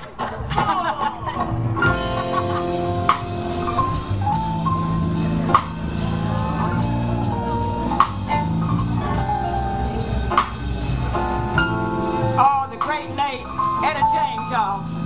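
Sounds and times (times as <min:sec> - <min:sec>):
keyboard notes: 0:01.4 - 0:15.0
electric guitar notes: 0:01.5 - 0:15.0
drum kit hits: 0:01.8 - 0:15.0.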